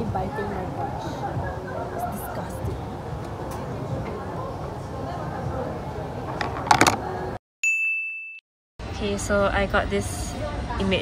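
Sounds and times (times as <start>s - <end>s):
cafe background noise: 0.0s - 7.4s
bright chime ding: 7.6s - 8.4s.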